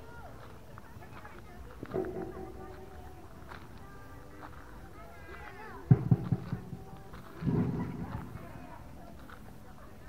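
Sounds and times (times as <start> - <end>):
footsteps and handling knocks: 1.3 - 4.8, 5.4 - 9.4.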